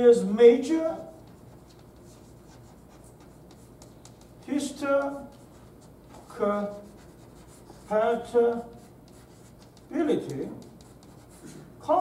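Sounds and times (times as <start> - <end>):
chalk scratching on blackboard: 1.0 - 11.7.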